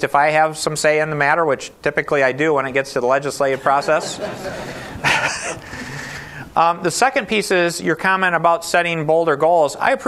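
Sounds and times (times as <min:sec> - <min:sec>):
audience laughing: 0:03.5 - 0:06.1.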